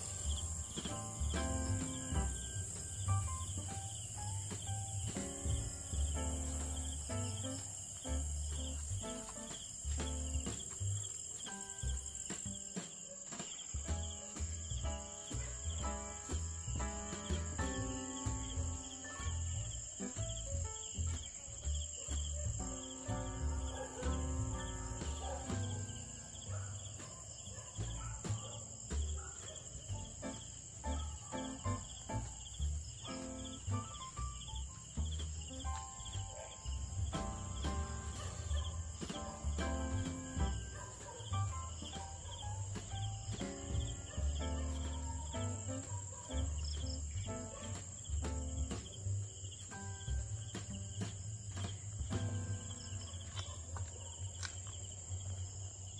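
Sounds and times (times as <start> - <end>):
slow instrumental music: 0.0 - 55.6
crickets chirping: 0.0 - 55.9.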